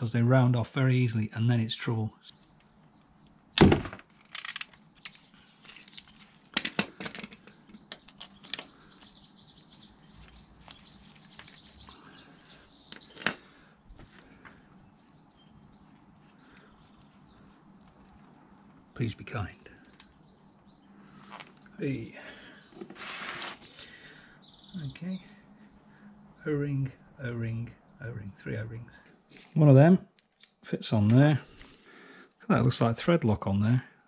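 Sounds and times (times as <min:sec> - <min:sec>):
birds chirping: 0:00.0 - 0:34.0
dull thud: 0:03.6 - 0:04.0.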